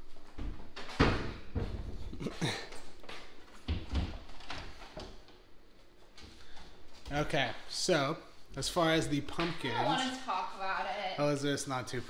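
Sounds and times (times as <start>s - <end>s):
appliance knocks and bumps: 0.8s - 2.2s.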